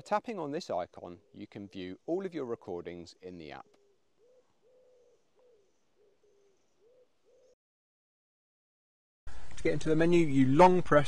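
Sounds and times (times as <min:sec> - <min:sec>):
pigeon cooing: 0:03.6 - 0:07.6.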